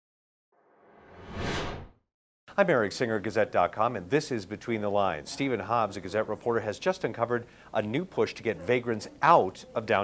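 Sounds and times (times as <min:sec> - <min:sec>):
whoosh sound effect: 0:00.8 - 0:02.0.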